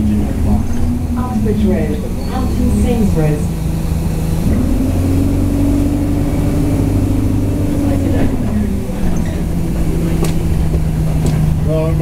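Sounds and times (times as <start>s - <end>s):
bus engine droning: 0.0s - 12.0s.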